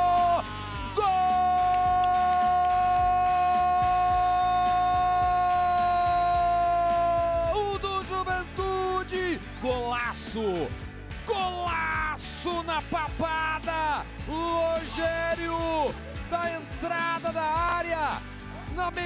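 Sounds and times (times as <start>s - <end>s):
commentator's long goal cry: 0.0s - 7.8s
excited shouted commentary: 0.0s - 19.0s.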